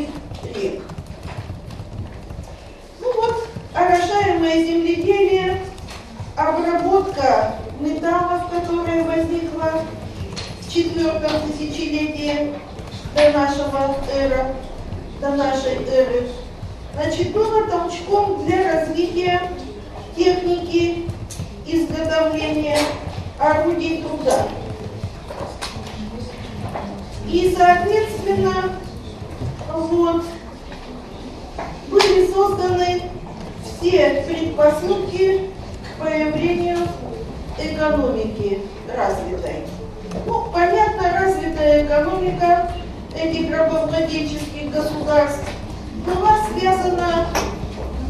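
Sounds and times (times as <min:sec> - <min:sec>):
computer keyboard typing: 0:00.0 - 0:29.7.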